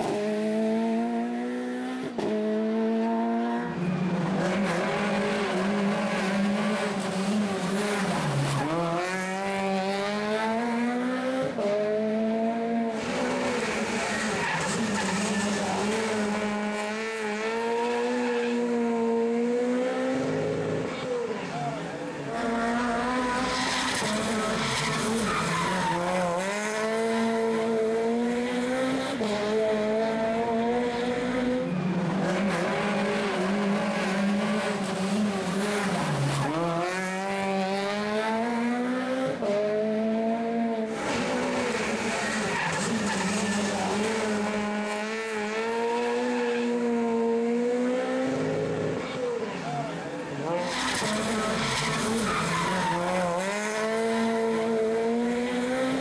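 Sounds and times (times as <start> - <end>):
rally car engine revving: 0.0 - 56.0.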